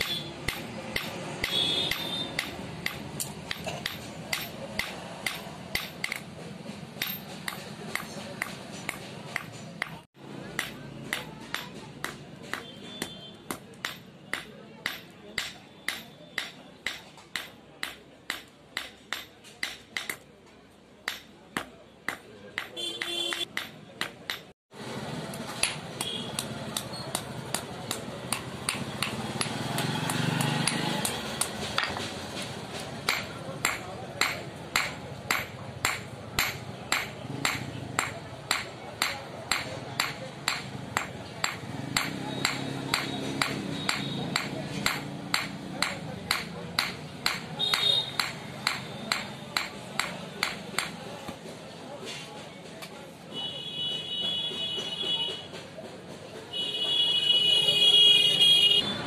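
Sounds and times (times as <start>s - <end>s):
hammer clinking on anvil: 0.0s - 6.3s, 7.0s - 20.2s, 33.1s - 51.0s.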